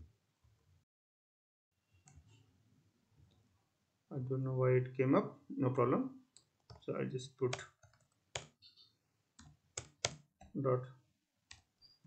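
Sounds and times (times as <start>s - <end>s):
computer keyboard keystrokes: 7.5s - 8.6s, 9.4s - 10.3s.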